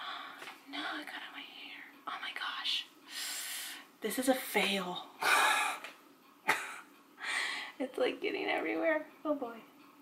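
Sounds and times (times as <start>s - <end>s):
woman whispering: 0.6s - 2.9s.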